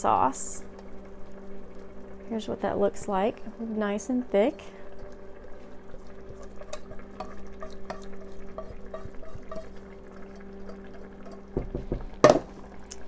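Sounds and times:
steady low hum: 0:00.0 - 0:13.0
spatula scraping pans: 0:06.3 - 0:12.4
knocks on pans: 0:11.5 - 0:12.5.

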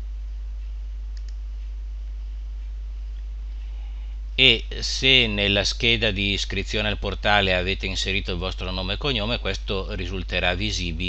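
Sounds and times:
low electrical hum: 0:00.0 - 0:11.0
computer mouse clicks: 0:01.1 - 0:01.4.

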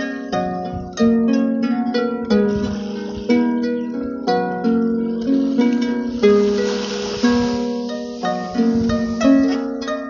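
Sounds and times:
soft hiss: 0:02.3 - 0:10.0.

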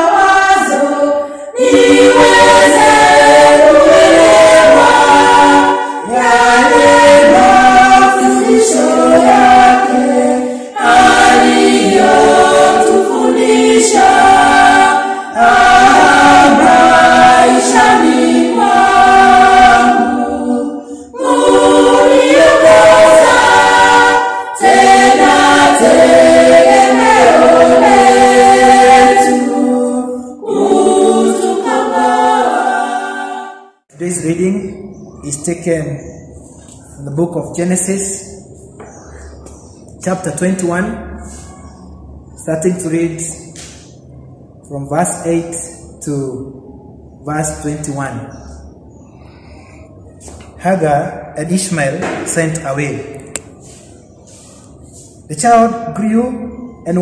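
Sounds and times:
congregation singing a hymn: 0:00.0 - 0:39.2.

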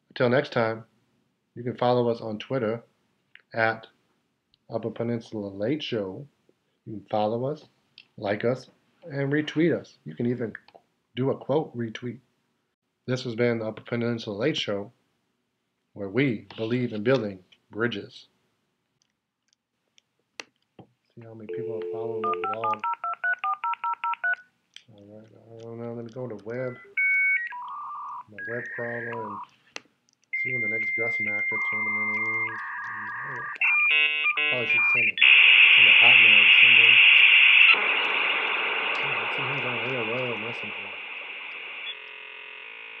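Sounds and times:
telephone keypad beeps: 0:21.5 - 0:24.4
steady electronic tones: 0:26.4 - 0:29.5, 0:30.3 - 0:43.0
dial-up modem static hiss: 0:27.5 - 0:29.5, 0:30.5 - 0:43.0
low wavering modem tone: 0:27.8 - 0:29.4, 0:30.4 - 0:35.2, 0:37.8 - 0:43.0.

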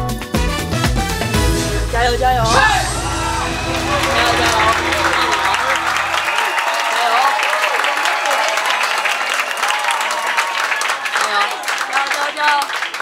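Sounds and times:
audience applauding: 0:02.7 - 0:13.0.

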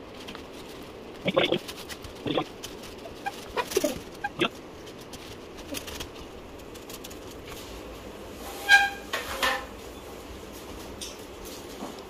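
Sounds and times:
strap rustling through weave: 0:00.0 - 0:08.0
hen clucking: 0:01.2 - 0:01.6, 0:02.2 - 0:04.6.

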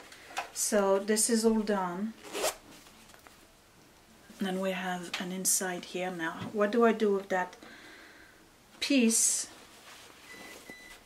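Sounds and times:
zipper pulled open: 0:02.2 - 0:02.6.

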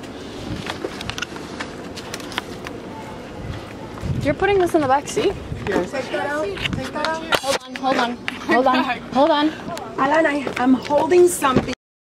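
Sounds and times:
outdoor background noise: 0:00.0 - 0:11.8.

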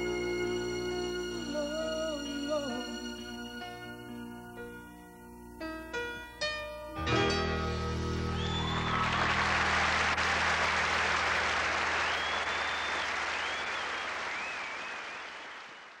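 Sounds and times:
whistles from audience: 0:08.1 - 0:10.1, 0:11.6 - 0:16.0
audience applauding: 0:08.3 - 0:16.0.

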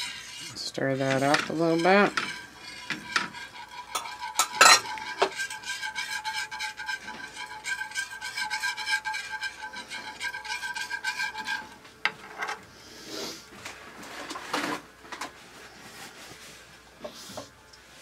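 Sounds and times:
whisk scraping metal skillet: 0:00.0 - 0:11.9.

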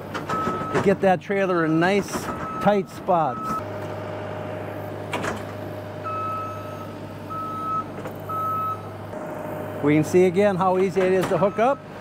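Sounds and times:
loader engine running: 0:00.0 - 0:12.0
back-up alarm beeps: 0:02.3 - 0:03.6, 0:06.0 - 0:08.9.

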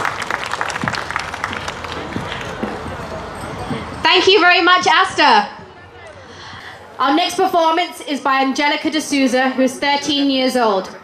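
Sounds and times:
audience applauding: 0:00.0 - 0:02.6.

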